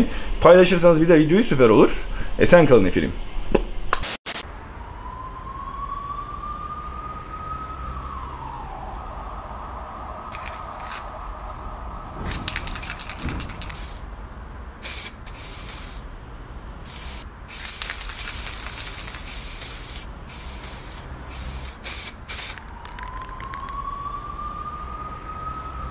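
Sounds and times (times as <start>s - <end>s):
rising siren-like tone: 4.4s - 14.4s, 21.1s - 25.9s
spray paint can hissing: 10.3s - 11.1s, 12.3s - 14.0s, 14.8s - 16.0s, 16.9s - 23.8s.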